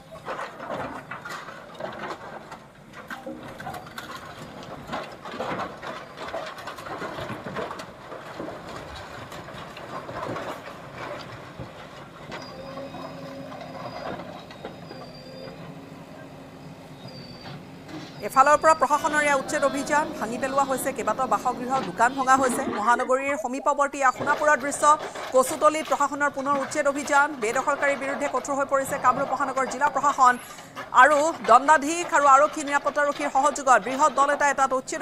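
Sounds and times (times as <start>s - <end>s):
wood and sheet metal breaking: 0.0s - 12.9s, 18.2s - 35.0s
backhoe engine running: 0.0s - 35.0s.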